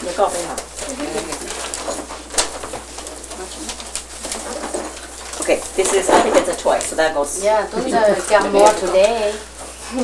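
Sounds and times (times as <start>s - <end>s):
handling of wrapped gift boxes: 0.0s - 7.2s.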